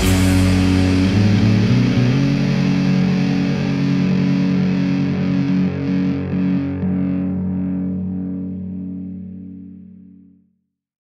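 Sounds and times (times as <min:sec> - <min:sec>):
metal drums: 0:00.0 - 0:02.2
distorted electric guitar: 0:00.0 - 0:10.3.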